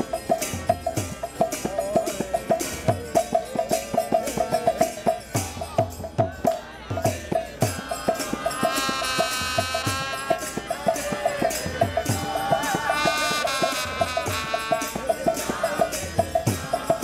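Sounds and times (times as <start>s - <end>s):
group singing a chant: 0.0s - 17.0s
harmonium tones: 8.6s - 10.6s, 12.9s - 15.2s.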